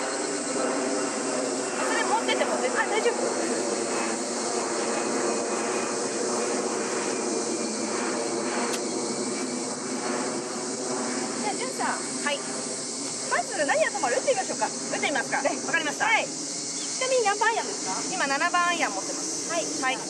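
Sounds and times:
background drone with hiss: 0.0s - 20.0s.

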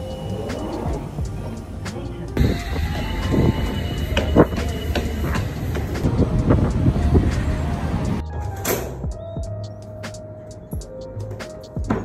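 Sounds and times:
low train rumble: 0.0s - 11.9s
background music: 0.0s - 12.0s.

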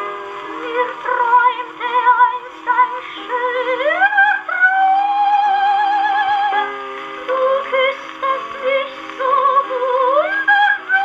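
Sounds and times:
instrumental accompaniment: 0.0s - 11.0s
old phonograph record playing: 0.0s - 11.0s
person singing with strong vibrato: 0.5s - 11.0s.

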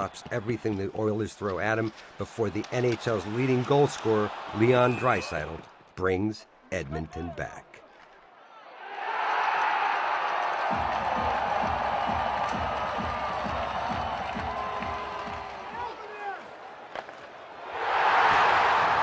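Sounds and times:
crowd cheering loudly: 3.1s - 5.6s, 8.3s - 16.8s, 17.4s - 19.0s
music beating: 10.6s - 15.8s.

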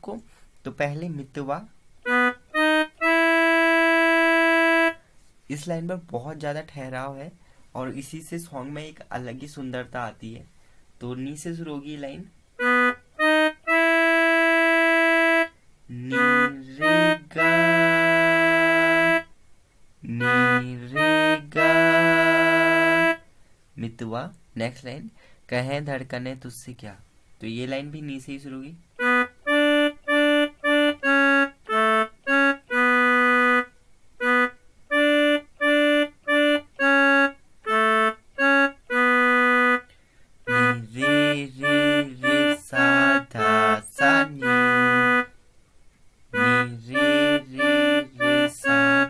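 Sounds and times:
electronic keyboard slow melody: 2.0s - 5.0s, 12.6s - 19.3s, 20.2s - 23.2s, 29.0s - 45.3s, 46.4s - 49.0s
electronic keyboard reed tone note: 16.1s - 19.3s, 20.2s - 23.2s.

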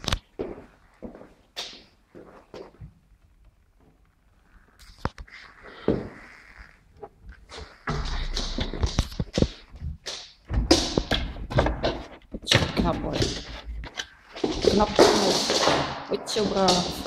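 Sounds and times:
dog's paws scrabbling: 0.0s - 17.0s.

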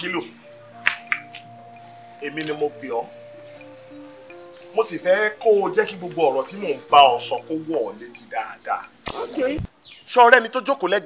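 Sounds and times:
soft background music: 0.0s - 9.7s
sharp clicks: 9.0s - 9.4s
voice fragment: 9.1s - 9.7s.

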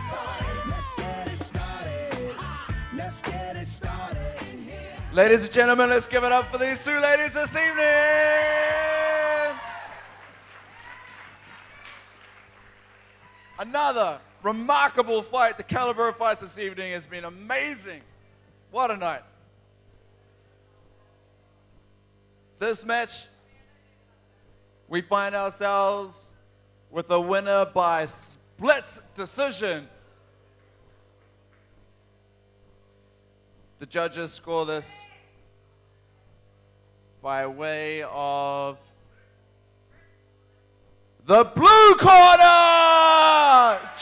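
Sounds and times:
electrical mains hum: 0.0s - 44.0s
faint applause: 7.4s - 13.6s.

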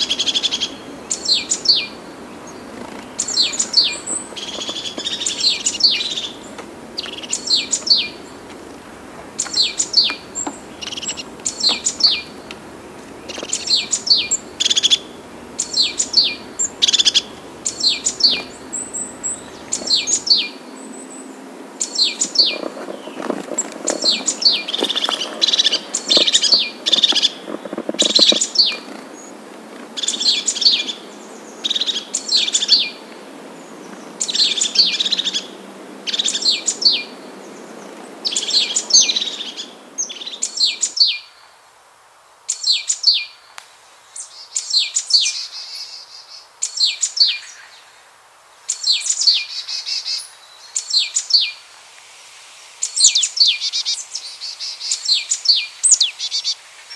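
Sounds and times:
songbird chirping: 0.0s - 41.6s, 42.2s - 56.9s
background hiss: 0.0s - 56.9s.

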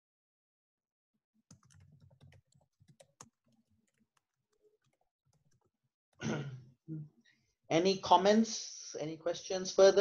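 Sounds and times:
typing on computer keyboard: 1.5s - 5.8s.

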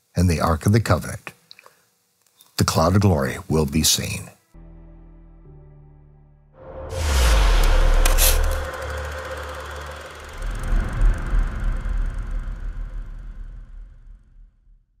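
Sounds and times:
pulsing low rumble: 6.7s - 15.0s
loud noisy hit with deep bass: 6.8s - 14.7s.

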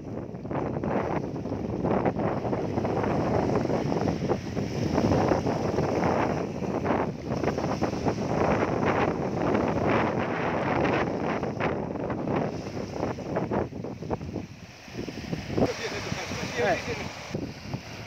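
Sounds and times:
wind buffeting microphone: 0.0s - 18.0s
small waves washing over rocks: 0.9s - 18.0s.

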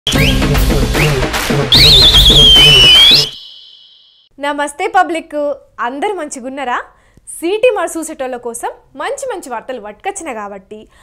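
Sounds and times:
drum beat: 0.1s - 3.3s
shrill warbling whistle: 1.7s - 4.3s.

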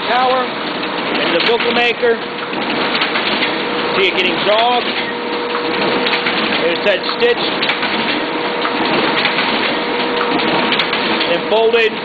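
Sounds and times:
collator machine whirring: 0.0s - 12.0s.

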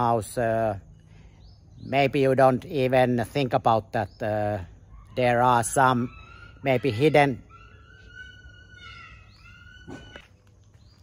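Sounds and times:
dog yelping: 4.8s - 10.5s
dog whining: 4.9s - 10.4s.

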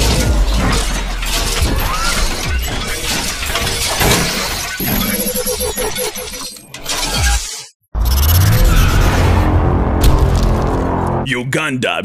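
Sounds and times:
crashing shattering effects: 8.2s - 11.2s
music: 8.5s - 11.4s
low hits: 8.6s - 11.3s.

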